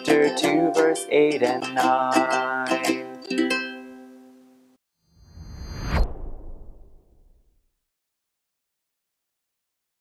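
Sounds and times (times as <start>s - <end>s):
whoosh sound effect: 5.2s - 7.5s.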